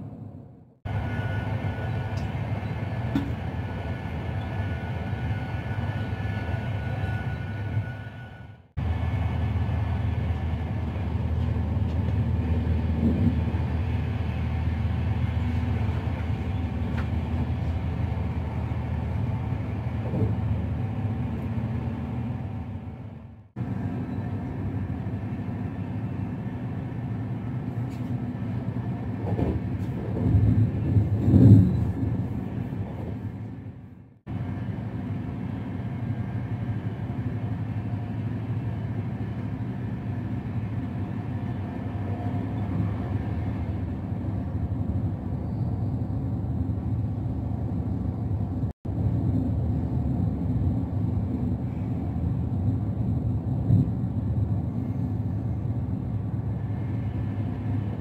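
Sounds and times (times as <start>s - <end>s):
train rumbling on rails: 0.0s - 58.0s.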